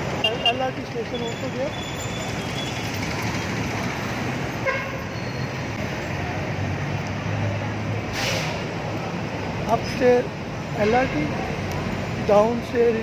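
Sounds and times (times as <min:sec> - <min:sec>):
vehicle traffic noise: 0:00.0 - 0:13.0.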